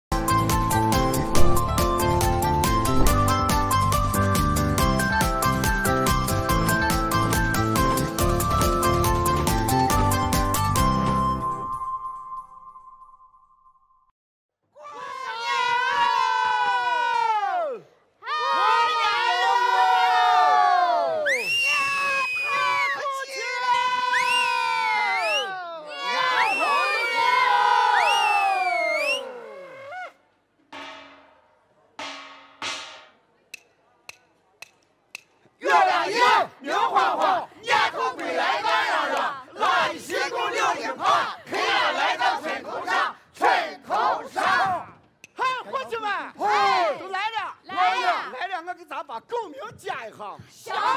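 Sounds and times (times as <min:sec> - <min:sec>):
performers shouting calls in unison: 0:35.6 - 0:48.4, 0:50.6 - 0:50.9.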